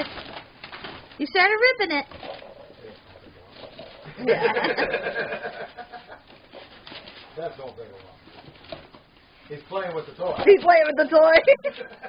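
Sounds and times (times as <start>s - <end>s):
wrapping paper rustling tearing: 0.0s - 4.1s.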